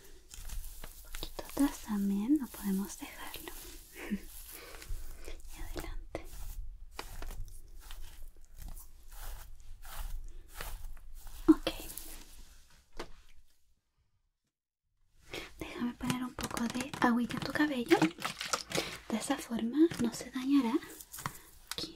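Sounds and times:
fingertips rustling through hair: 0:00.0 - 0:12.6, 0:15.8 - 0:21.9.

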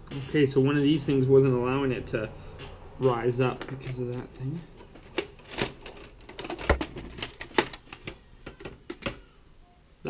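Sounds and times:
plastic clicks and clacks: 0:04.8 - 0:09.3.

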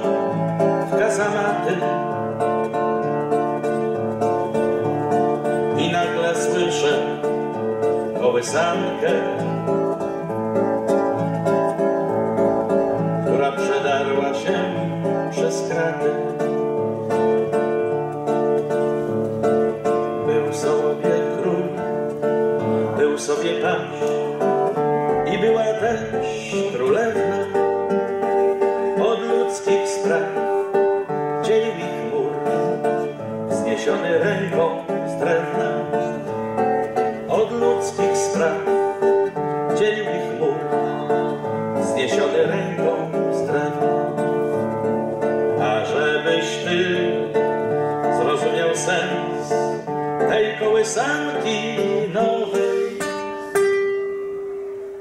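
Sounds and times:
classical guitar picked chords: 0:00.0 - 0:55.0.

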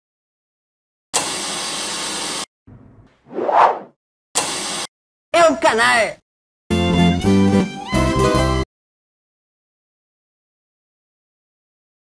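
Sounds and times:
whoosh: 0:02.7 - 0:04.0.

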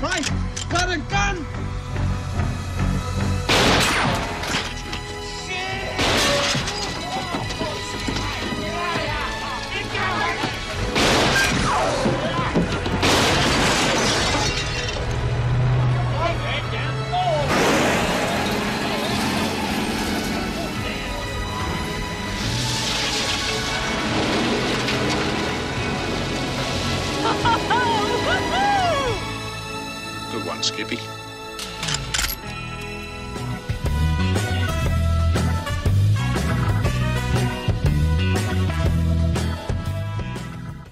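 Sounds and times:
dramatic music: 0:00.0 - 0:40.9
gunshots: 0:03.5 - 0:04.4, 0:10.9 - 0:12.0, 0:13.0 - 0:14.4
men yelling: 0:05.3 - 0:10.8, 0:27.2 - 0:29.4
glass shattering: 0:06.0 - 0:07.4, 0:10.9 - 0:15.2
woman laughing: 0:27.2 - 0:29.2.

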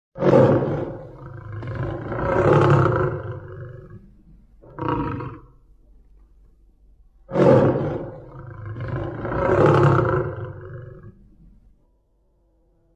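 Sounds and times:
lion grunt: 0:00.2 - 0:04.0, 0:07.3 - 0:11.2
lion roaring: 0:00.2 - 0:05.6, 0:07.3 - 0:11.3.

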